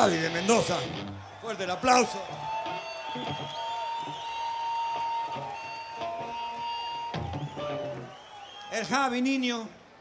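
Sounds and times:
electric guitar notes: 0:00.0 - 0:01.2, 0:05.0 - 0:08.1.

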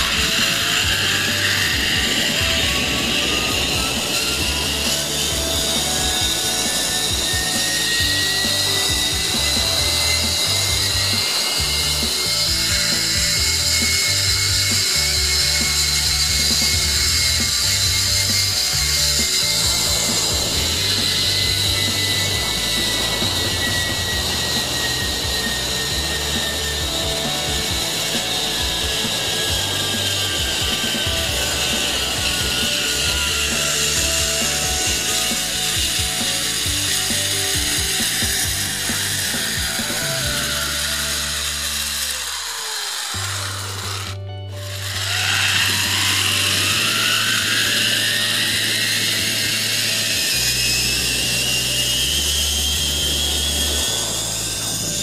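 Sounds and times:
background music with bass: 0:00.0 - 0:42.5, 0:43.1 - 0:55.0
zipline pulleys whirring on cable: 0:00.0 - 0:55.0.

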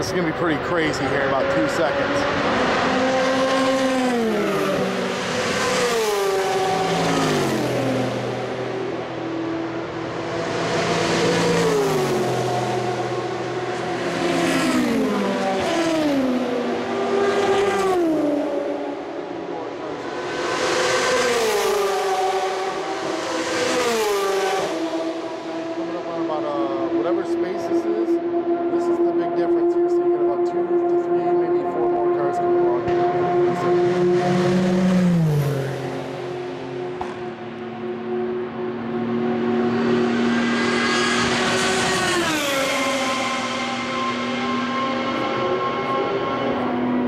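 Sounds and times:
race cars passing at full speed: 0:00.0 - 0:47.0.

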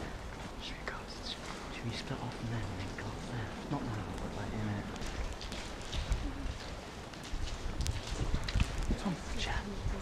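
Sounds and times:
footsteps on damp ground: 0:00.0 - 0:00.6, 0:01.2 - 0:10.0
wind buffeting microphone: 0:00.0 - 0:10.0.

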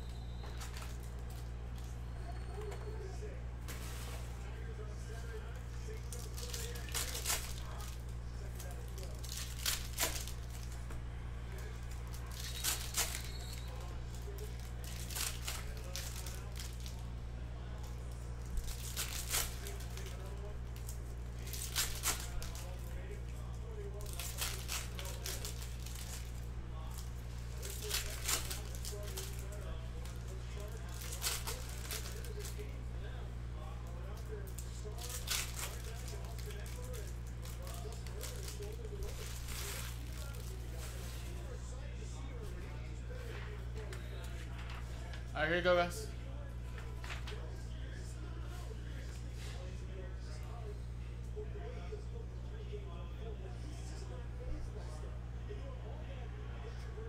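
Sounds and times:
cards rustling: 0:00.0 - 0:17.1, 0:17.7 - 0:32.8, 0:33.9 - 0:41.6
foil wrappers crinkling: 0:00.0 - 0:45.9
low electrical hum: 0:00.0 - 0:57.0.

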